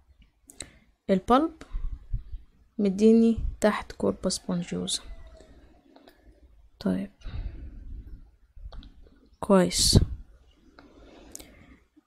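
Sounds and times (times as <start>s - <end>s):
soft breathy noise: 0.5s - 2.6s, 5.0s - 9.2s, 9.9s - 12.0s.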